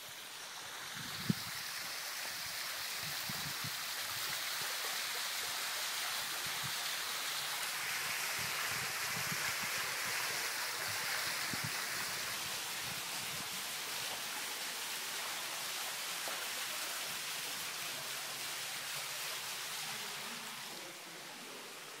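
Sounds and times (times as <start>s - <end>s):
fountain jets splashing: 0.0s - 22.0s.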